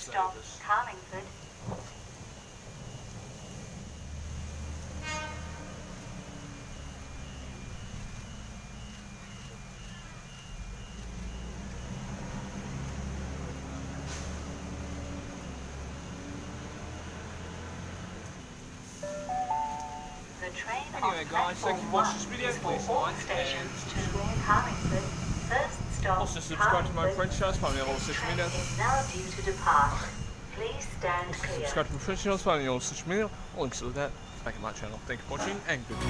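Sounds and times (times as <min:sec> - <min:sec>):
electric train arriving: 0:00.0 - 0:36.0
heavy rain: 0:00.0 - 0:36.0
pitched train tones: 0:00.0 - 0:36.0
horn-like multi-pitch tone: 0:04.8 - 0:11.5, 0:19.0 - 0:23.6.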